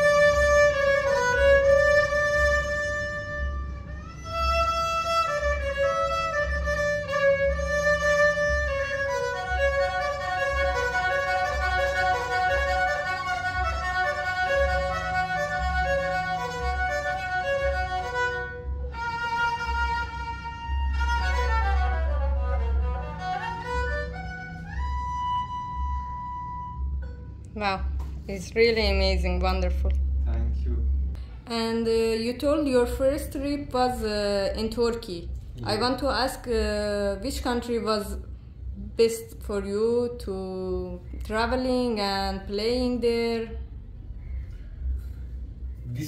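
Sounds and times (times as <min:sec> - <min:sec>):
bowed fiddle melody: 0:00.0 - 0:27.0.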